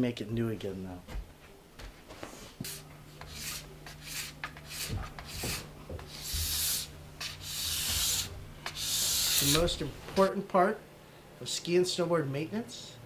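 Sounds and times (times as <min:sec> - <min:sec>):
scraper scraping ski base: 0:02.6 - 0:09.8.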